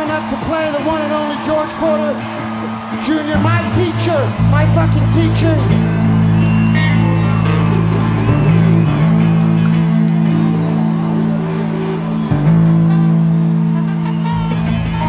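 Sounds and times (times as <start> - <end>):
live rock band playing: 1.0 - 15.0.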